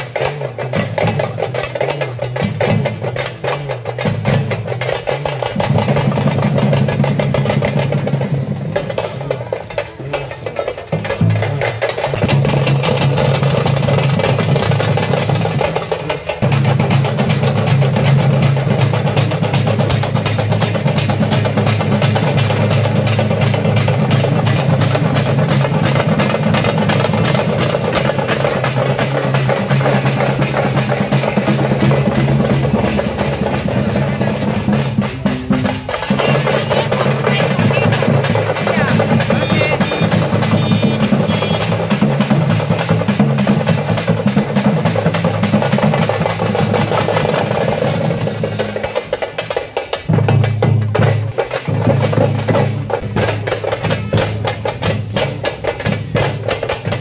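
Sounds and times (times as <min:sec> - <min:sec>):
fast continuous drumming: 0:00.0 - 0:57.0.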